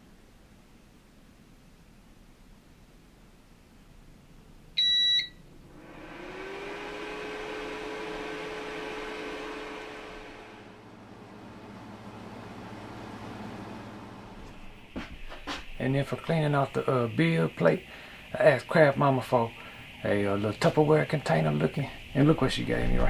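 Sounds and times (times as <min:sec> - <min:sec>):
printer beep: 0:04.8 - 0:05.4
printer motor whine: 0:05.5 - 0:15.1.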